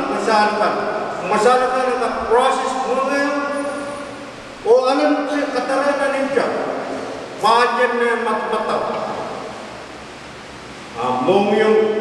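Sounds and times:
man speaking into a microphone: 0.0 - 4.0, 4.6 - 9.5, 11.0 - 12.0
steady hiss: 0.0 - 12.0.

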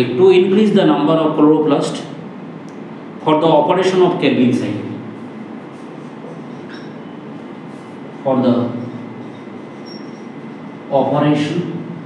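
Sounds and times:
steady background noise: 0.0 - 12.0
marker tip squeak: 9.8 - 10.3.

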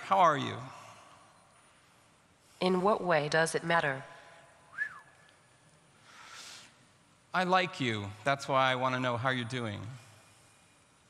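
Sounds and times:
faint steady tone: 0.0 - 11.0.

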